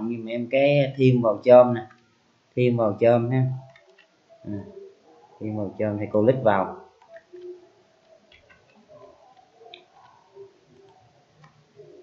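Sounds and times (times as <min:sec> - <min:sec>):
computer mouse clicks: 0:03.7 - 0:04.2, 0:07.0 - 0:12.0.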